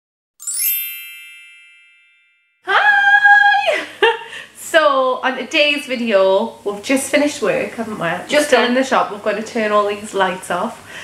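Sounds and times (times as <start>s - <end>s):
bell-like chime ringing: 0.4s - 2.7s.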